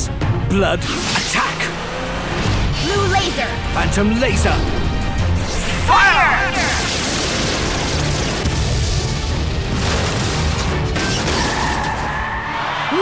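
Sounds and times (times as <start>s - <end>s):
dramatic action music: 0.0s - 13.0s.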